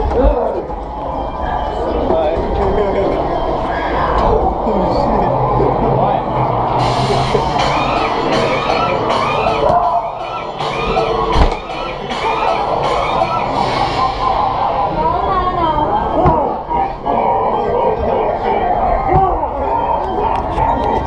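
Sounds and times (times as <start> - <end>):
crowd noise: 0.0 - 21.0
indistinct voices: 0.0 - 21.0
loud music: 3.3 - 21.0.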